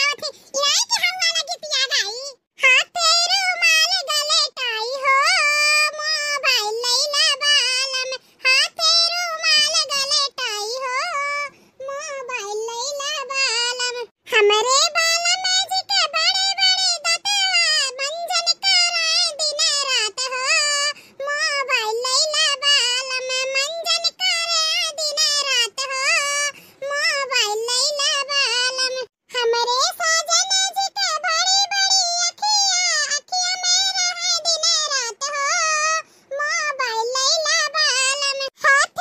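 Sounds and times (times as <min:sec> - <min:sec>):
high-pitched cartoon voice: 0:00.0 - 0:07.9, 0:08.5 - 0:39.0.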